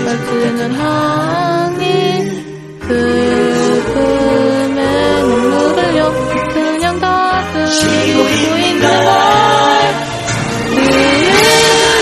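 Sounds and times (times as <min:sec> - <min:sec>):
voices singing held notes: 0:00.0 - 0:12.0.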